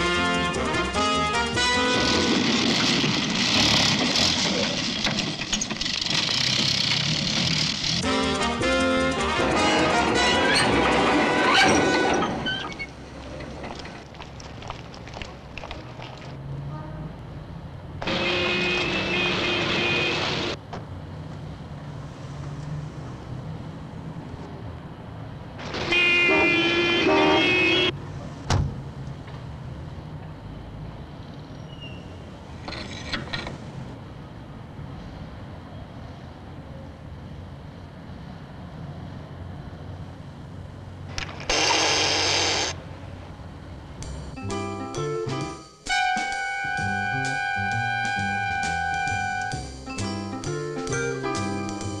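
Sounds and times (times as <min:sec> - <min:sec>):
street traffic rumbling: 0:00.0 - 0:52.0
car engine over rough ground: 0:01.6 - 0:16.4
vehicle horn blasts: 0:18.1 - 0:20.5, 0:25.9 - 0:28.0, 0:45.9 - 0:49.6.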